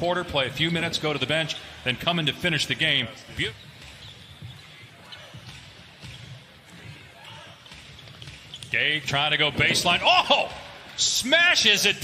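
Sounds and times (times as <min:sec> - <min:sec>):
court ambience: 0:00.0 - 0:12.0
basketball dribbling on hardwood: 0:03.3 - 0:07.0.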